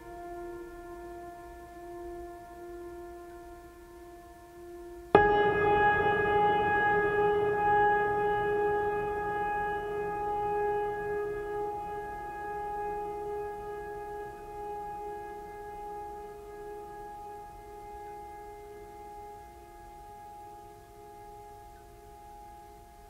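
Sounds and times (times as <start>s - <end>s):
long ringing tone: 0.0s - 23.0s.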